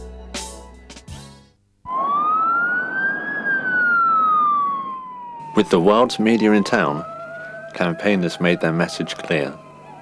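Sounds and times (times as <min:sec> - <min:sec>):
emergency vehicle siren wailing: 0:01.9 - 0:10.0.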